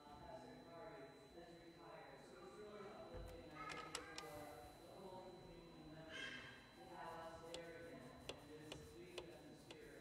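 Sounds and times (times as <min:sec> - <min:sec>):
faint distant speech: 0:00.0 - 0:10.0
faint regular ticking: 0:03.6 - 0:04.3.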